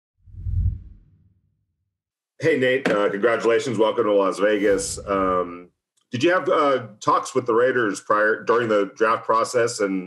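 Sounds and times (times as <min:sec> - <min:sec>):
deep whoosh: 0:00.2 - 0:01.5, 0:04.5 - 0:05.6.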